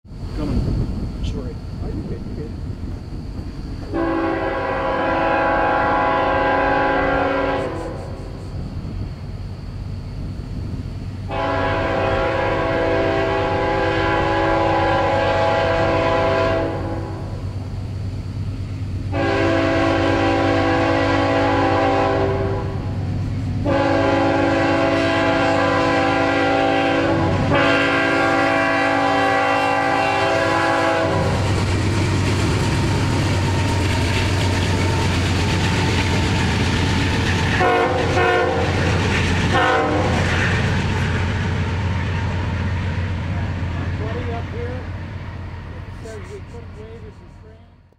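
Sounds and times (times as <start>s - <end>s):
diesel locomotives rumbling past: 0.1s - 47.9s
locomotive air horn blasts: 3.9s - 8.4s, 11.3s - 17.4s, 19.1s - 23.0s, 23.6s - 31.4s, 37.6s - 38.8s, 39.5s - 40.2s.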